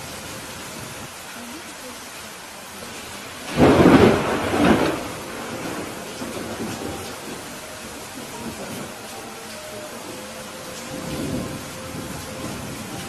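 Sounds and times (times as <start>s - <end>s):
steady rain: 0.0s - 13.0s
thunderclap: 3.4s - 9.1s.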